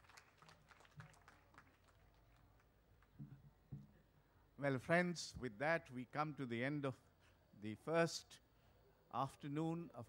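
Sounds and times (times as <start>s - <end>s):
audience applause: 0.0s - 2.4s.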